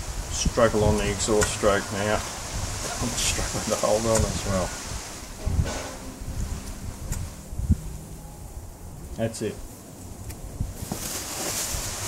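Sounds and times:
plastic bag rustling and crinkling: 10.0 - 12.0.

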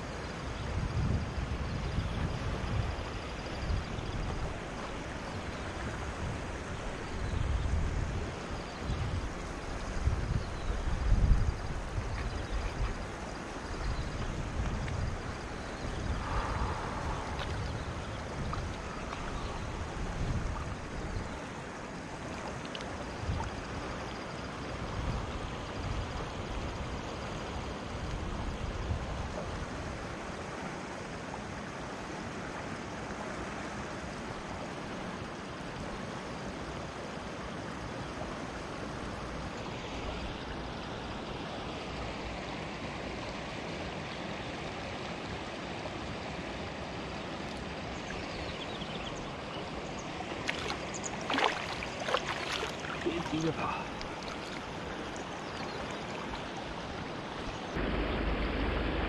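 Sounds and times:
river water flowing over stones: 2.3 - 59.0
low rumbles: 15.9 - 20.5, 57.7 - 59.0.

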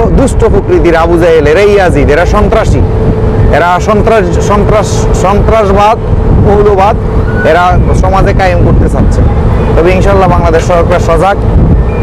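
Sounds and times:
man talking: 0.0 - 2.9, 3.5 - 11.4
boat engine drone: 0.0 - 12.0.

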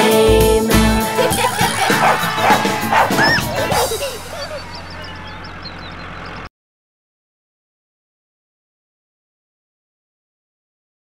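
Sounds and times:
children's song music: 0.0 - 5.1
cartoon dog barking and yipping: 1.1 - 5.2.

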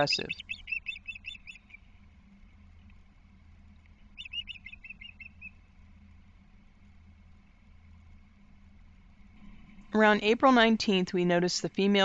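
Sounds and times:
osprey chirping: 0.0 - 2.0, 4.0 - 5.7.

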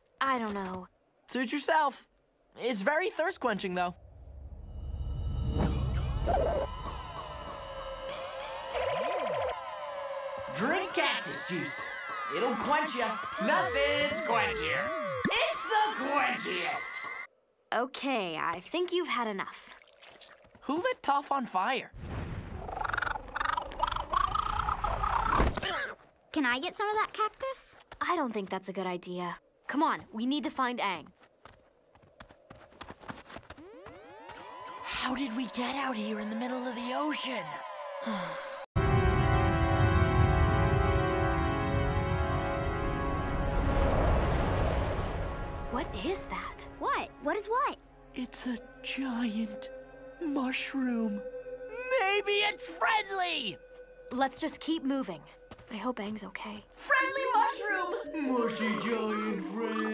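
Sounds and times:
rising tones: 4.0 - 17.3, 33.5 - 38.3
fast warbling wobble: 22.6 - 25.6.

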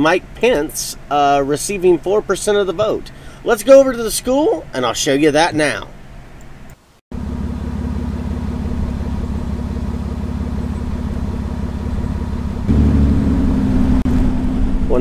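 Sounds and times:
car engine and road drone: 7.1 - 15.0.

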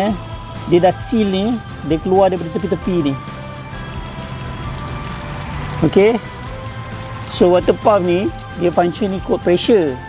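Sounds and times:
water running and splashing: 0.0 - 10.0.

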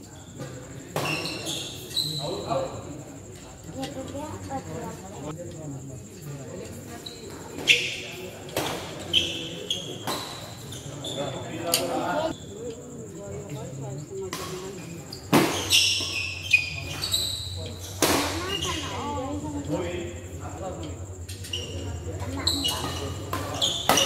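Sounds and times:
reverberant voices: 0.0 - 24.0
sneakers squeaking on floor: 0.1 - 2.6, 6.9 - 11.6, 14.4 - 19.4, 21.3 - 24.0.

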